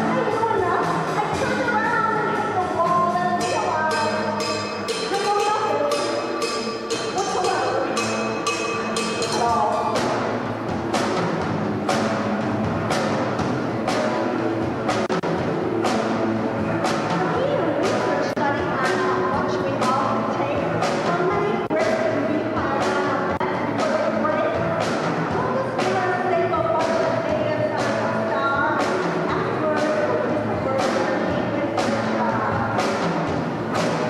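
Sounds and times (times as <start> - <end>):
drums and cymbal strokes: 0.0 - 34.0
woman singing: 17.2 - 24.6, 25.4 - 32.8.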